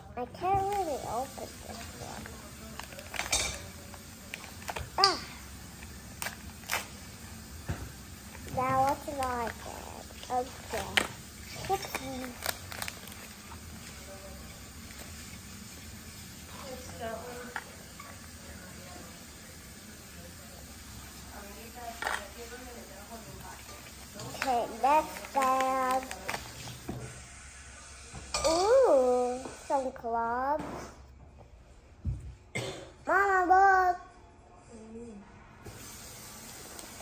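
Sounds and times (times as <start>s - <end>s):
paper packet being torn open: 1.7s - 7.1s, 10.3s - 13.6s, 24.9s - 26.6s
child vocal sounds: 5.0s - 5.5s, 8.5s - 12.5s, 28.4s - 30.8s.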